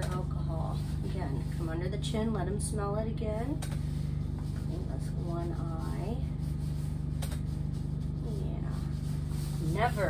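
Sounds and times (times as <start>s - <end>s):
woman speaking: 0.0s - 3.7s, 4.6s - 6.4s, 8.2s - 10.0s
low hum with fast flutter: 0.0s - 10.0s.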